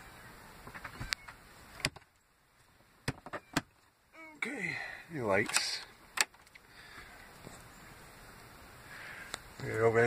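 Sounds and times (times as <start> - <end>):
faint background hiss: 0.0 - 10.0
sharp clicks and light knocks: 5.4 - 6.6.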